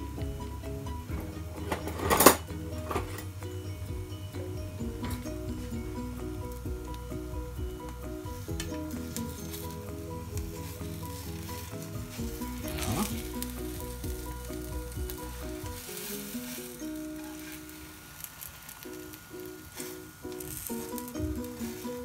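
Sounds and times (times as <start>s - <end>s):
background music: 0.0s - 22.0s
flatbread sizzling in pan: 0.0s - 22.0s.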